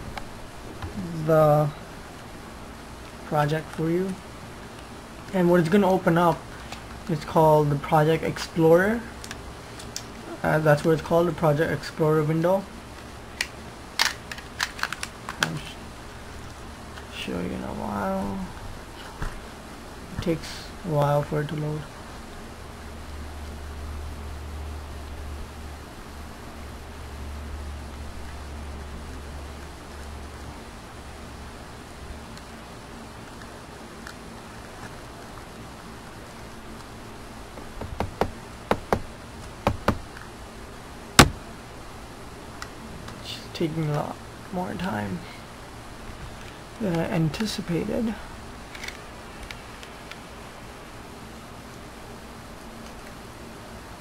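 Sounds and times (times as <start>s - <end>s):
sharp taps: 37.6s - 40.1s, 41.2s - 41.4s.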